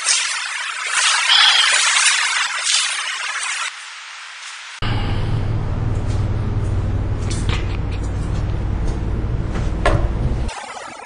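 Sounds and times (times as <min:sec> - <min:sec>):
low rumble: 0:04.8 - 0:10.5.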